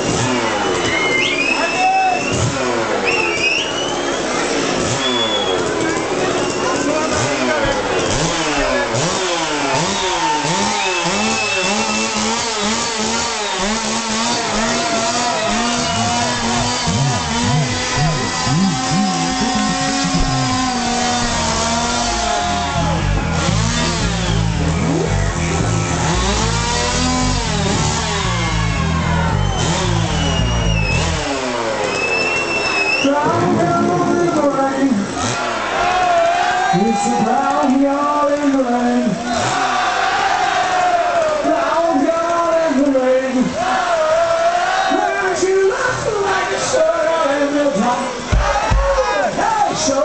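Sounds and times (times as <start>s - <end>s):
bass and drums: 0.0s - 44.2s, 45.9s - 50.0s
chainsaw revving: 0.0s - 49.1s.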